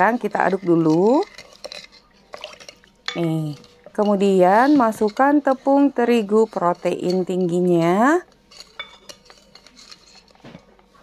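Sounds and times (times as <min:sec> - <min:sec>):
spoon scraping glass bowl: 0:00.0 - 0:10.7.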